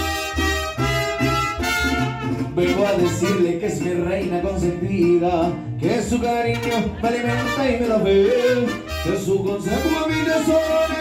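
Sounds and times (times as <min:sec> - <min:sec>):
mariachi band playing: 0:00.0 - 0:11.0.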